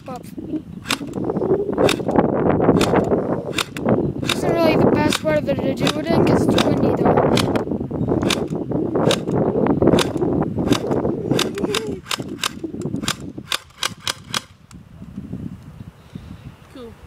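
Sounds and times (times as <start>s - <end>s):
airsoft rifle shots clicking: 0.8s - 1.2s, 1.8s - 2.2s, 2.8s - 7.6s, 8.2s - 14.8s.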